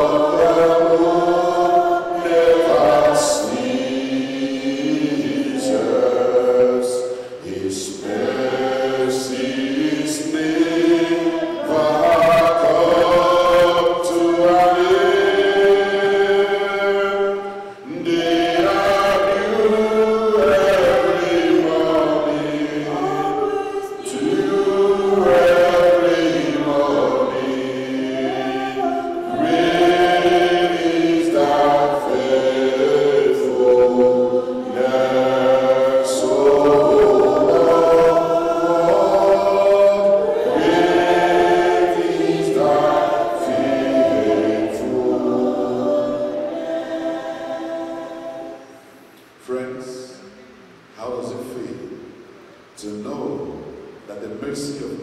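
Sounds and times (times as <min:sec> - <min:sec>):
man singing hymn into microphone: 0:00.0 - 0:45.3
voices singing along: 0:00.0 - 0:51.8.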